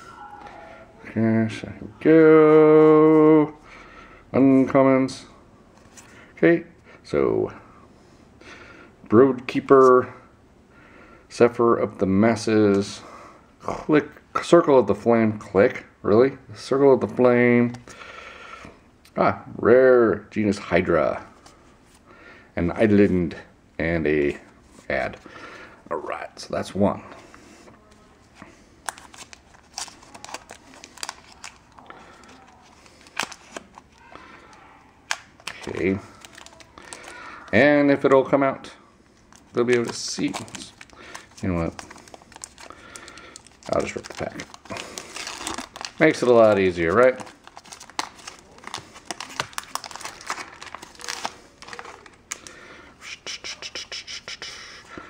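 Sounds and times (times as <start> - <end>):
foil wrapper crinkling: 28.8 - 34.2, 35.1 - 37.6, 39.2 - 52.7.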